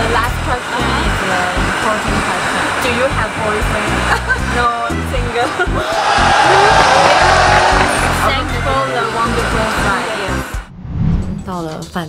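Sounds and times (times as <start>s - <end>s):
people talking: 0.0s - 10.6s, 11.5s - 12.0s.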